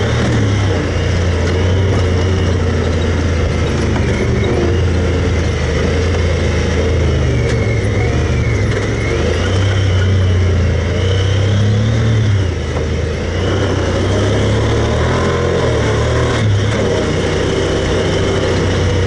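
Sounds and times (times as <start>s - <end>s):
vehicle engine under throttle: 0.0s - 19.0s.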